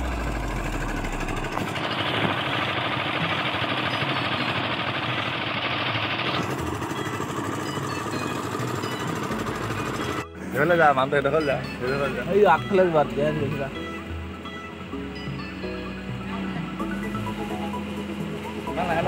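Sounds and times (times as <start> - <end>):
engine running: 0.0 - 19.0.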